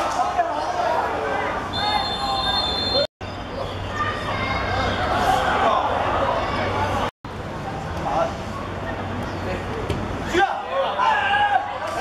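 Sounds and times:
voices calling on pitch: 0.0 - 7.1
referee's whistle: 1.7 - 3.1.

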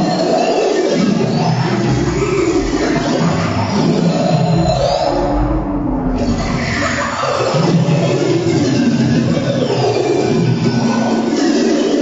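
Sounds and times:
noisy electronic music: 1.0 - 12.0
low rumble: 1.5 - 8.4.

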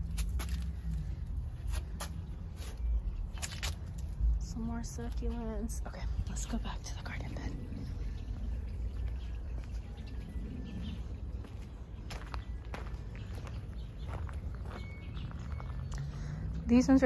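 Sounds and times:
footsteps on concrete and gravel: 0.0 - 4.3, 8.3 - 16.2
low rumble on microphone: 4.0 - 16.8
faint bird chirps: 7.9 - 16.5.

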